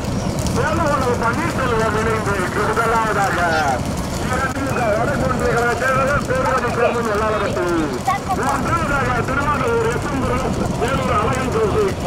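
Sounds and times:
vehicle engine running: 0:00.0 - 0:12.0
man giving race commentary: 0:00.5 - 0:12.0.

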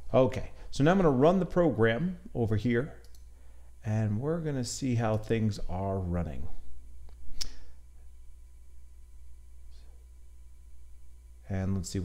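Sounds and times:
low steady hum: 0:00.0 - 0:12.0
sharp click: 0:07.1 - 0:07.6.

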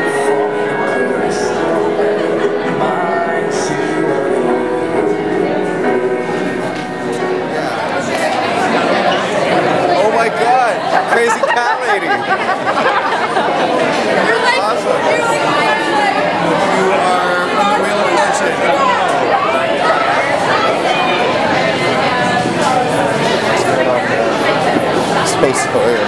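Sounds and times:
background music: 0:00.0 - 0:09.1
crowd chatter: 0:00.0 - 0:26.0.

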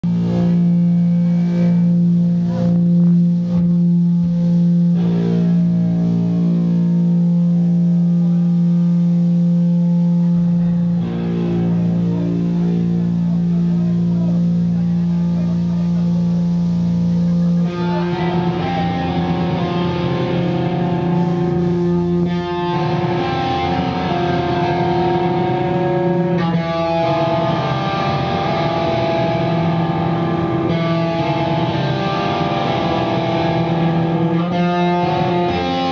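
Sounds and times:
electric guitar drone: 0:00.0 - 0:35.9.

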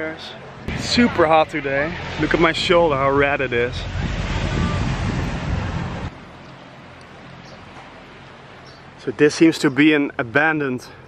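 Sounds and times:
outdoor background hiss: 0:00.0 - 0:11.0
wind buffeting microphone: 0:00.6 - 0:06.1.

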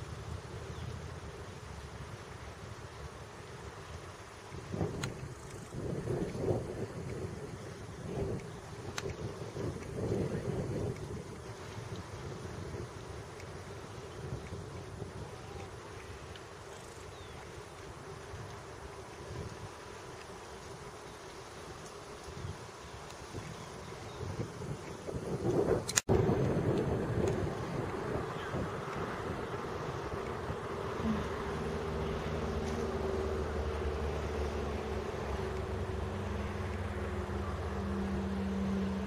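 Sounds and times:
wind buffeting microphone: 0:04.4 - 0:39.0.

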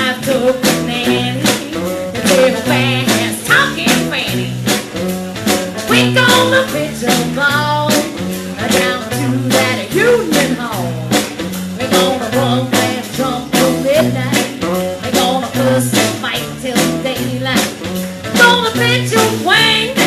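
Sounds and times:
electric blues band playing: 0:00.0 - 0:20.0.

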